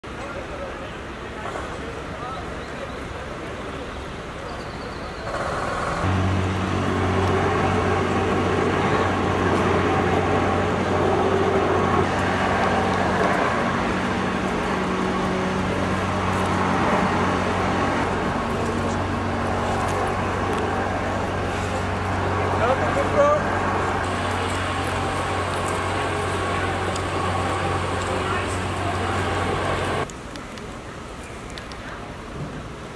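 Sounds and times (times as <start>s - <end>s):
people talking: 0.0s - 5.4s, 7.0s - 32.9s
street noise: 0.0s - 32.9s
low engine drone: 0.2s - 30.1s.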